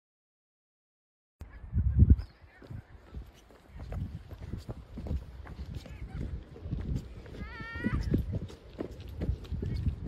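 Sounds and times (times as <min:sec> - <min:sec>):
thudding footsteps on trail: 0:02.1 - 0:10.0.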